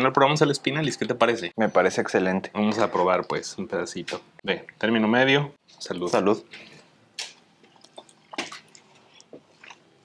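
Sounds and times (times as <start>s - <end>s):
people chewing: 6.5s - 10.0s.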